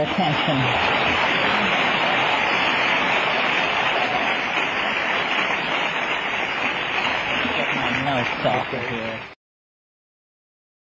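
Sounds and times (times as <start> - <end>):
audience applauding: 0.0 - 9.4.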